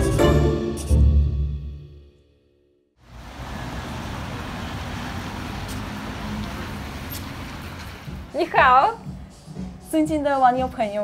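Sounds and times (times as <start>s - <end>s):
music: 0.0s - 2.8s, 8.0s - 11.0s.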